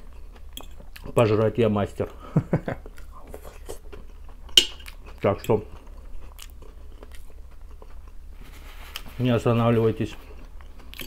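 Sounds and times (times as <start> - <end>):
chewing and mouth noises: 0.0 - 1.3, 2.8 - 9.2, 10.1 - 11.0.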